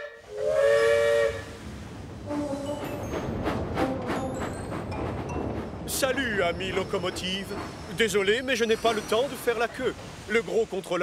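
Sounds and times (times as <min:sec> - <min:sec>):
steam locomotive whistle: 0:00.0 - 0:01.6
steam chuffing and hiss: 0:00.0 - 0:11.0.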